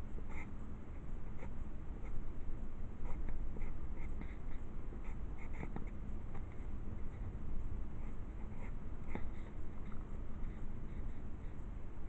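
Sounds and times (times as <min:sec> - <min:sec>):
pencil scratching on paper: 0:01.3 - 0:02.2, 0:03.0 - 0:06.7, 0:08.0 - 0:11.6.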